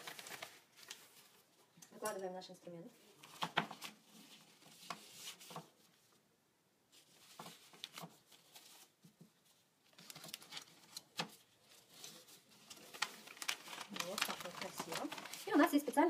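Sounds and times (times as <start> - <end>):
sterilization pouch crinkling: 9.9 - 16.0
person speaking: 13.8 - 16.0.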